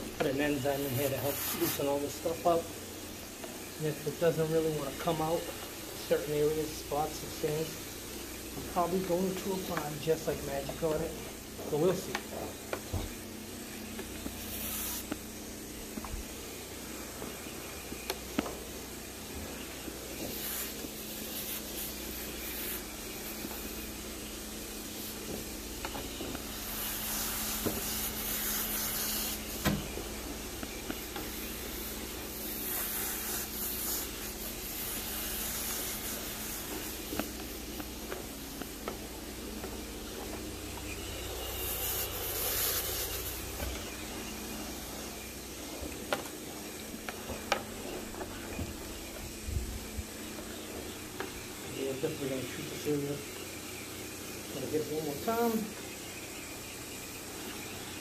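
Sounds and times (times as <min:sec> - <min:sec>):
spray wand hissing: 0:00.0 - 0:55.8
low equipment hum: 0:00.0 - 0:58.0.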